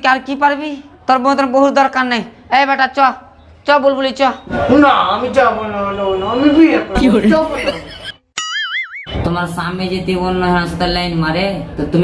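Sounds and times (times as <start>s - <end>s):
springy boing sound effect: 8.4s - 9.2s.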